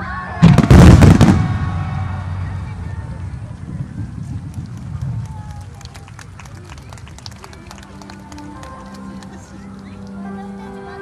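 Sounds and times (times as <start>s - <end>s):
crowd voices: 0.0s - 11.0s
fireworks rumble: 0.2s - 10.2s
fireworks pops and crackles: 0.4s - 2.0s, 3.1s - 10.2s
music: 7.0s - 11.0s.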